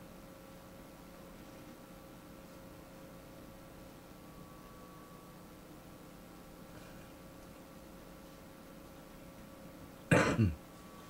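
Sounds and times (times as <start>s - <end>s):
person clearing throat: 10.1s - 10.6s.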